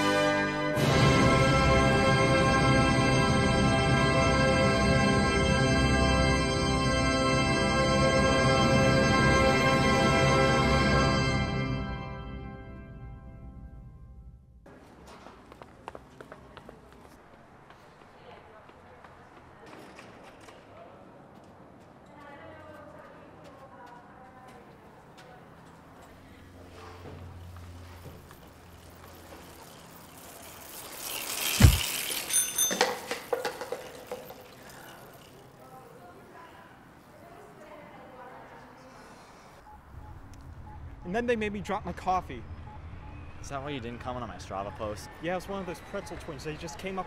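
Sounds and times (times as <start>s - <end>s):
bicycle bell ring: 32.0s - 35.5s.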